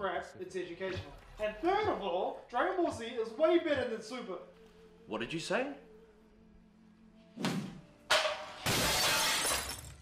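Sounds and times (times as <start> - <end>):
glass shattering: 8.1 - 10.0.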